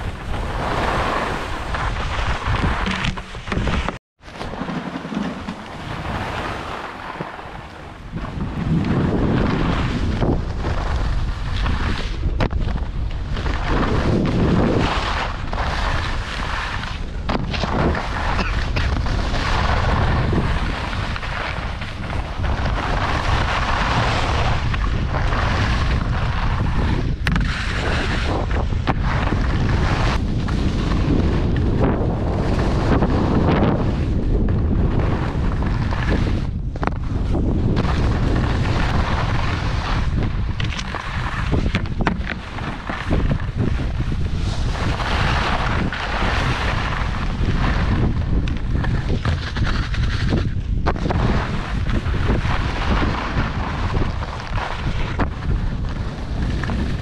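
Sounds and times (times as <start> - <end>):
skis scraping on snow: 0.0 - 57.0
wind buffeting microphone: 0.0 - 57.0.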